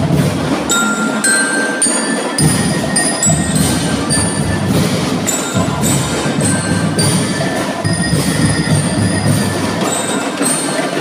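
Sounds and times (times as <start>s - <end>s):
marching band drums: 0.0s - 11.0s
marching bells ringing notes: 0.0s - 11.0s.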